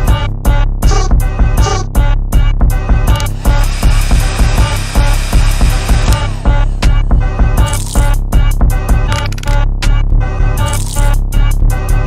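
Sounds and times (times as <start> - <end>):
drill beat with heavy bass: 0.0 - 12.0
hissing noise: 3.2 - 8.2.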